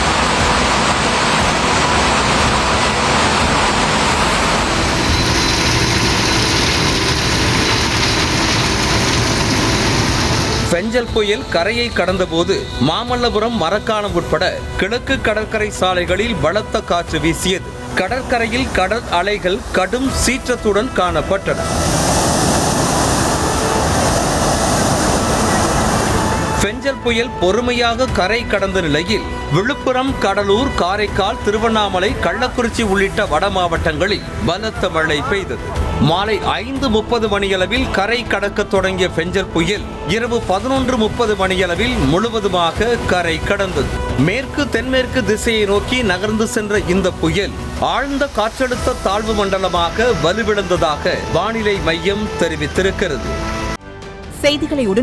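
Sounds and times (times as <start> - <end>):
sea waves breaking on shore: 0.0 - 11.0, 16.4 - 27.4, 30.5 - 36.0, 39.2 - 53.8
torrential rain and gale wind: 0.0 - 11.5, 12.7 - 53.8
roaring gale wind: 21.5 - 26.6.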